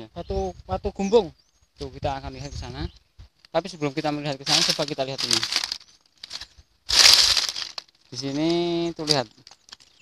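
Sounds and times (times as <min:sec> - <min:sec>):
footstep crunch on gravel: 0:04.0 - 0:10.0.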